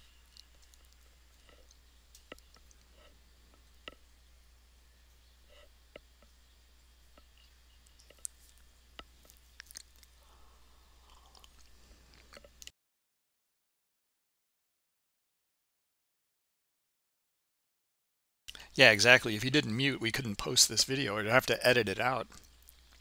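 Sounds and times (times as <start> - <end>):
faint low hum: 0.0 - 12.7, 18.5 - 23.0.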